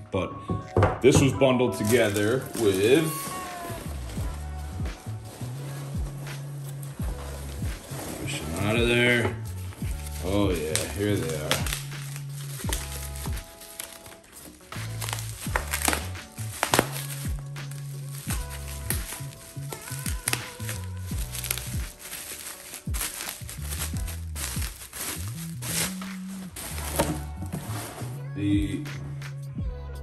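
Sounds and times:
background music with bass line: 0.0s - 30.0s
bubble wrap crinkling: 1.7s - 28.2s.

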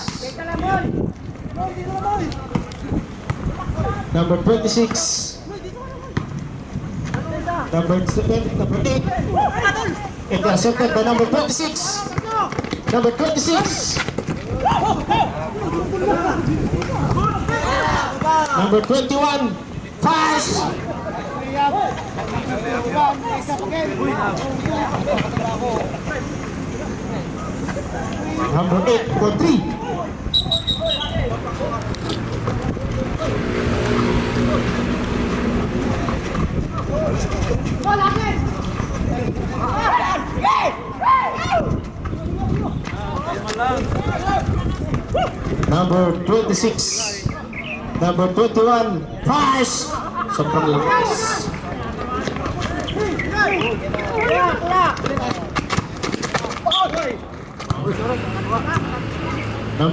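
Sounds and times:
people shouting and calling out: 0.0s - 6.4s, 7.1s - 55.7s, 56.3s - 59.9s
outdoor background noise: 0.0s - 59.9s
voices: 0.0s - 59.9s
motor engine hum: 31.8s - 36.9s.

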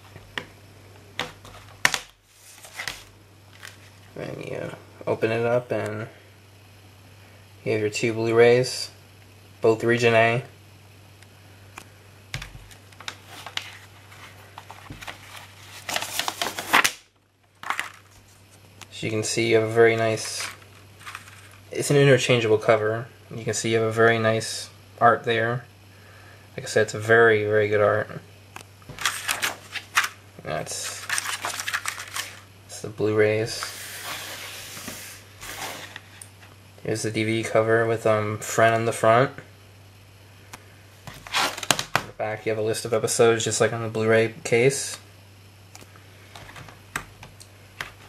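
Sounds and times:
low steady hum: 0.0s - 48.0s
plastic disc case rustling: 1.2s - 4.2s, 12.4s - 17.0s, 17.6s - 18.6s, 20.0s - 21.7s, 28.9s - 30.2s, 30.8s - 32.5s, 41.1s - 42.1s, 46.3s - 48.0s
man speaking: 4.2s - 6.2s, 18.9s - 20.6s, 21.7s - 25.7s.

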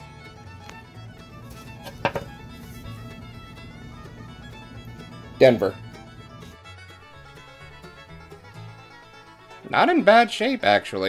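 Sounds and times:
background fiddle music: 0.0s - 11.0s
coin knocking on paper towel: 1.8s - 2.4s.

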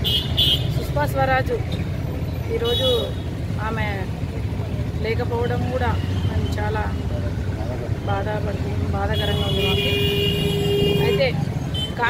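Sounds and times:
woman speaking: 10.9s - 12.0s.

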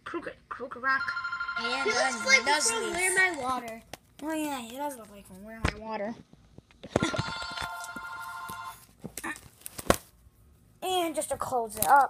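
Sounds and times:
bell-like metallic ring: 1.0s - 3.2s.

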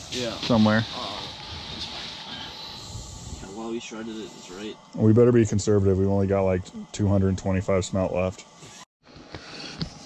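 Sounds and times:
propane heater hissing: 0.0s - 8.9s
man's voice: 3.5s - 8.4s.

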